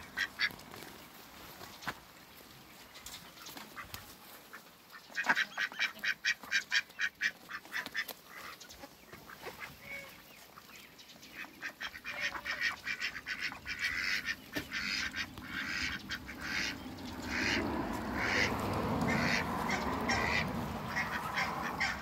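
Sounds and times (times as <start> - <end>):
ducks quacking: 0.0 - 2.0, 3.0 - 22.0.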